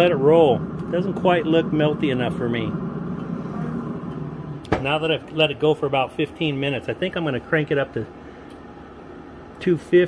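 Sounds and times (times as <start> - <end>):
pellet grill humming: 0.0 - 10.0.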